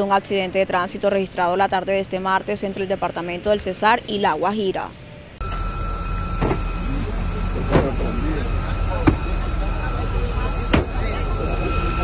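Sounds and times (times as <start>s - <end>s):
steady high tone: 0.8s - 12.0s
steady low rumble: 4.6s - 12.0s
faint voices: 6.8s - 12.0s.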